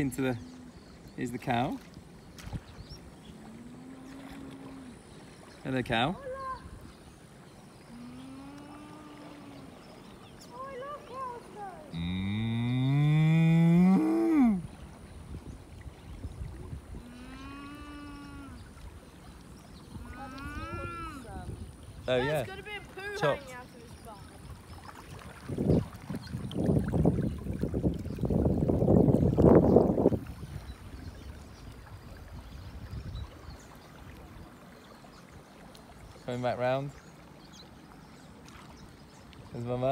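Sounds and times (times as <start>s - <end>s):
river water lapping: 0.0s - 39.9s
cow mooing: 11.9s - 14.6s, 17.0s - 18.6s, 20.0s - 21.3s.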